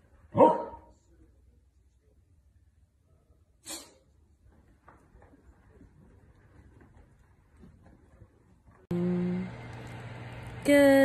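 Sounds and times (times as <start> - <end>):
small dog barking: 0.3 - 0.9.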